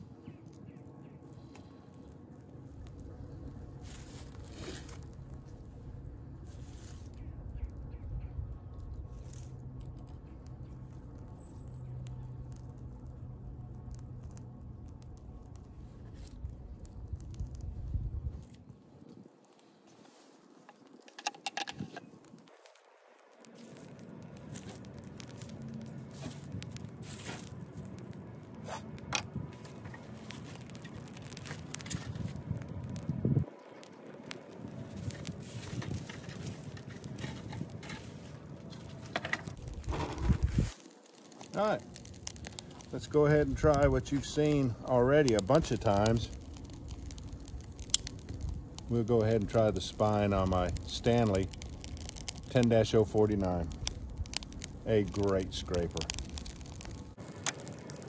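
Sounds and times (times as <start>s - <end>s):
low rumble: 0.0s - 19.1s, 23.5s - 40.8s, 41.4s - 58.0s
fire crackling: 0.0s - 58.0s
dry leaves rustling: 3.7s - 5.6s, 6.4s - 7.4s, 19.6s - 28.8s, 29.4s - 58.0s.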